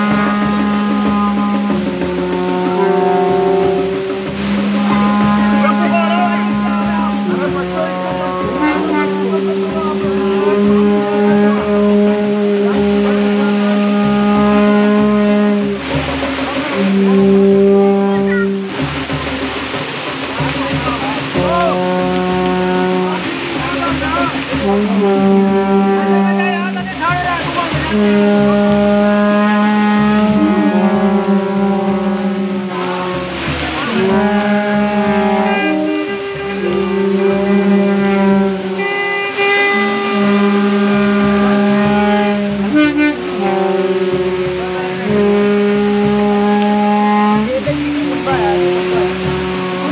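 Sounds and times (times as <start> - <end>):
crowd voices: 0.0 - 46.4, 47.3 - 49.9
wind instruments holding long notes: 0.0 - 49.9.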